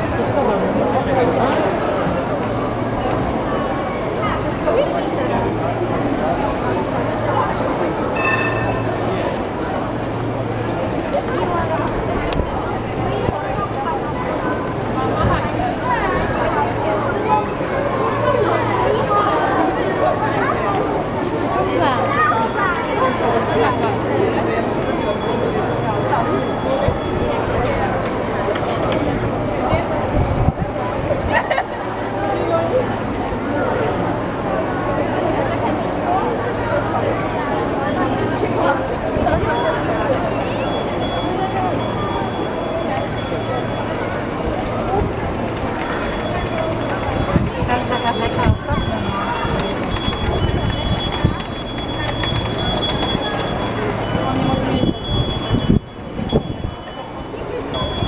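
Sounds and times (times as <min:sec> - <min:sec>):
bicycles rolling: 0:00.0 - 0:58.0
crowd walking: 0:00.0 - 0:58.0
overlapping voices chattering: 0:00.0 - 0:58.0
bicycle bells ringing: 0:08.2 - 0:13.4, 0:22.0 - 0:28.2, 0:39.2 - 0:58.0.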